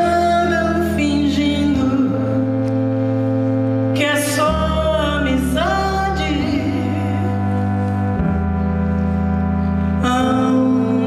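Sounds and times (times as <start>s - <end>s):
live band holding a chord: 0.0s - 11.0s.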